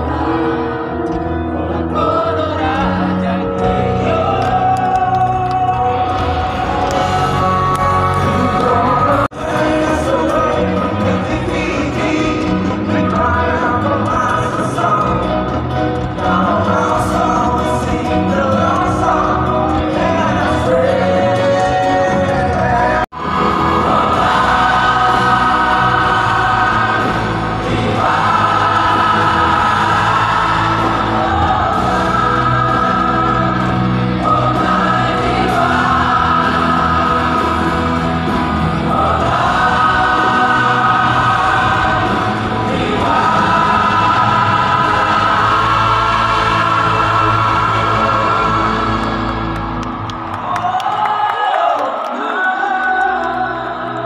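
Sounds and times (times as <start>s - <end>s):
single voice singing: 0.0s - 49.8s
amplified musical accompaniment: 0.0s - 54.0s
choir singing: 0.0s - 54.0s.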